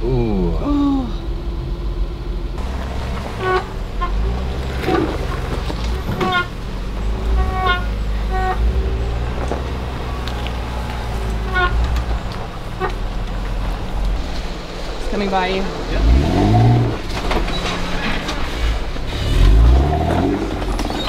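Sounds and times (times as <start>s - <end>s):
engine running low: 0.0s - 21.0s.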